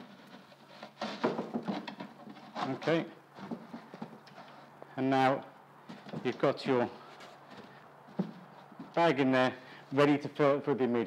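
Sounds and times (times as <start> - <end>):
soft knocks and scrapes: 0.0 - 4.7, 5.8 - 8.9.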